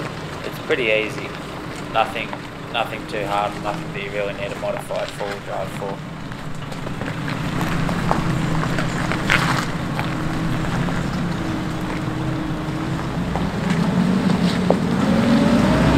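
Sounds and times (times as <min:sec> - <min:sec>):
stones clicking under tyres: 0:00.0 - 0:14.9
vehicle engine running: 0:00.0 - 0:15.9.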